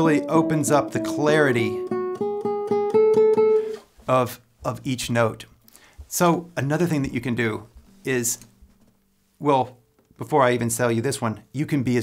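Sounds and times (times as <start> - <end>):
classical guitar tremolo: 0.0 - 3.8.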